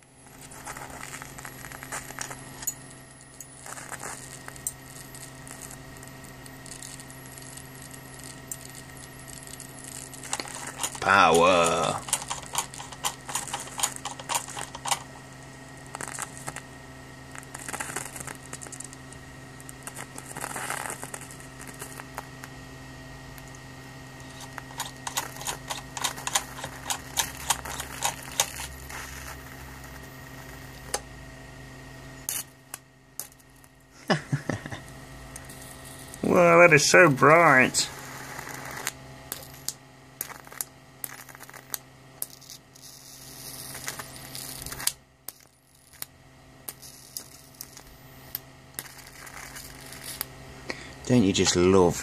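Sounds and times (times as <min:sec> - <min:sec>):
electric arc crackling snaps: 0:00.0 - 0:22.7, 0:23.3 - 0:31.2, 0:32.2 - 0:52.0
steady electrical hum: 0:00.0 - 0:52.0
person laughing: 0:34.0 - 0:34.9.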